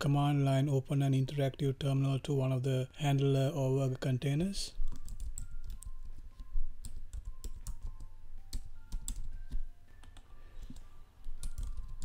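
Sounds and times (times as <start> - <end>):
computer keyboard typing: 4.8 - 12.0.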